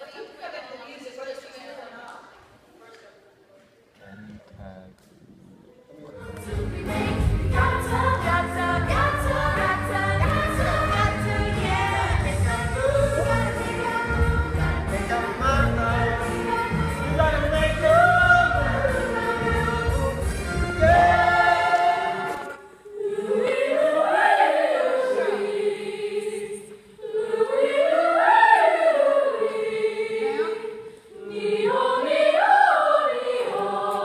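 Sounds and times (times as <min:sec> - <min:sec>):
young voices singing in unison: 0:06.1 - 0:34.0.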